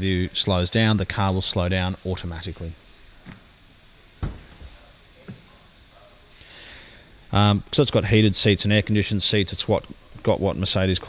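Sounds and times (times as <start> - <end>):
short thump: 4.2 - 4.7.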